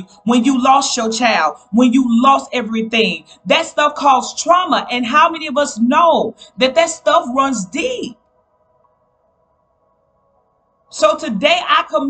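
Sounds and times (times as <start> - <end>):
woman speaking: 0.0 - 8.1, 11.0 - 12.0.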